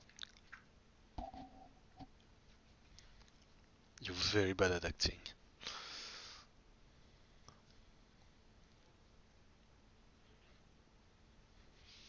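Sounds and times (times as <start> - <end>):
mouth noises and clicks: 0.0 - 2.3.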